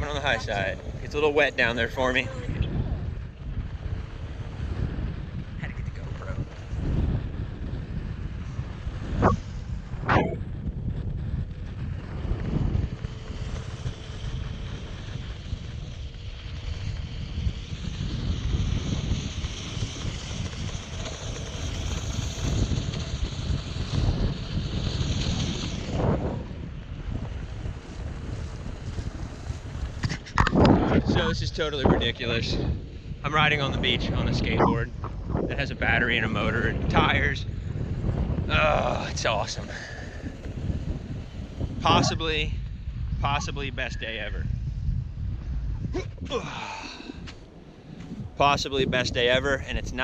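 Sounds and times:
wind buffeting microphone: 0:00.0 - 0:50.0.

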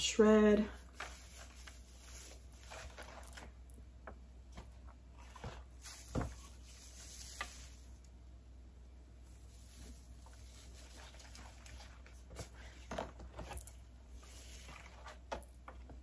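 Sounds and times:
rustling of gift-bag filler: 0:00.7 - 0:03.7, 0:05.2 - 0:08.2, 0:09.2 - 0:15.6
soft knocks against paper bag: 0:05.4 - 0:06.5.

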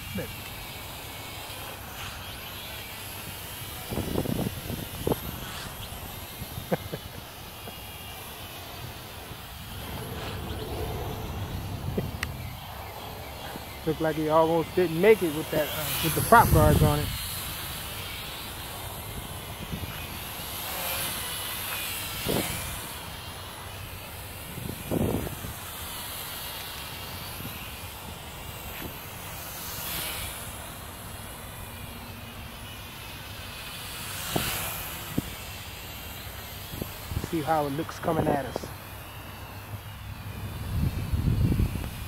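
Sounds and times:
toy drone propellers whirring: 0:00.0 - 0:42.0.

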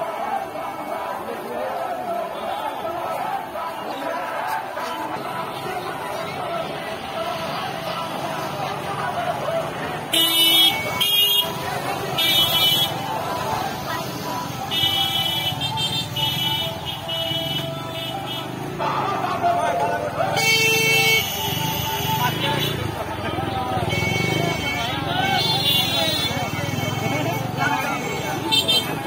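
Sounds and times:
crowd chatter: 0:00.0 - 0:29.0
motorcycle horns honking: 0:10.0 - 0:13.6, 0:14.4 - 0:19.5, 0:20.1 - 0:29.0.

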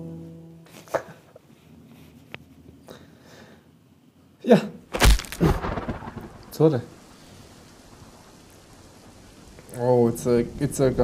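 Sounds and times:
steady rain: 0:05.0 - 0:11.0
thunderclap rumbling: 0:05.0 - 0:11.0.

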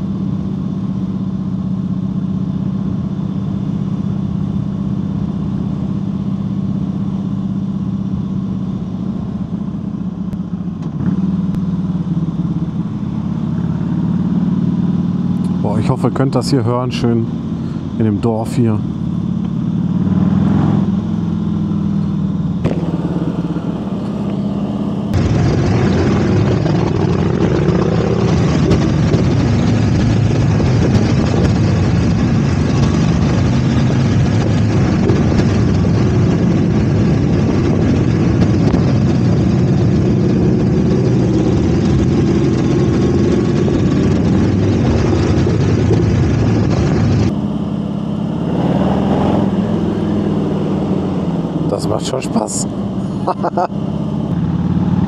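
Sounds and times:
motorcycle engine running: 0:00.0 - 0:55.0
passing motorcycle engine: 0:00.0 - 0:55.0
wind rushing: 0:48.2 - 0:51.7.

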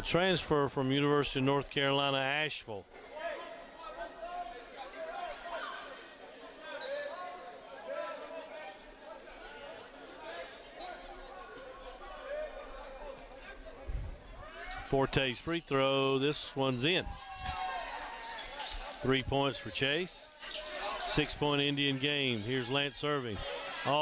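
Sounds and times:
crowd voices echoing in hall: 0:02.8 - 0:24.0.

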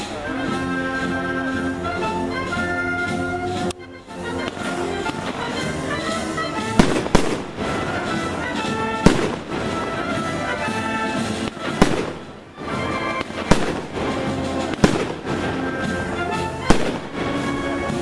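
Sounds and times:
wind band playing: 0:00.0 - 0:18.0
firecracker bangs: 0:04.4 - 0:18.0.

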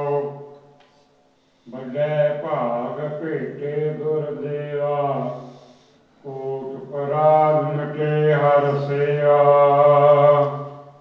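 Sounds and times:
man chanting: 0:00.0 - 0:00.5, 0:01.7 - 0:11.0.

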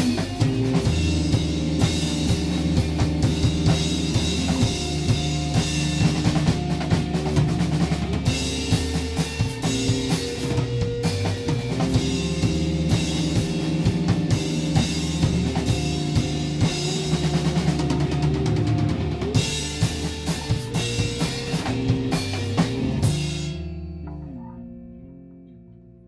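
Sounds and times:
rock band playing live: 0:00.0 - 0:24.4.

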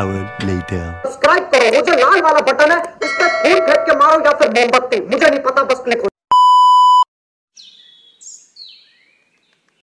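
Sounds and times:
electronic beep: 0:06.3 - 0:07.1.

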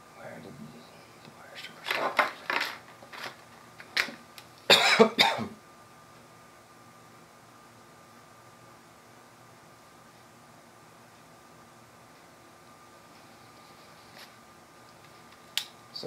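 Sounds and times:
man coughing: 0:04.7 - 0:05.6.

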